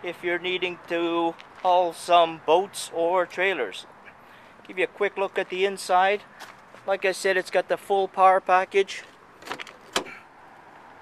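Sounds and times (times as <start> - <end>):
car door latch click: 9.4 - 10.2.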